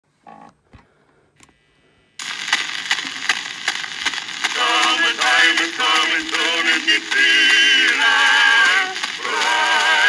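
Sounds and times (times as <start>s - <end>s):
record surface hiss and crackle: 0.1s - 10.0s
sharp repeating clicks: 2.2s - 10.0s.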